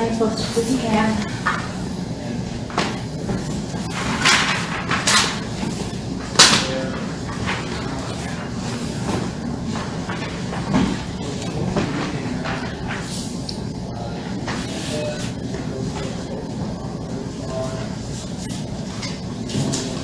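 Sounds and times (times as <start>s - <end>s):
room noise: 0.0s - 20.0s
paper rustling: 2.8s - 13.4s.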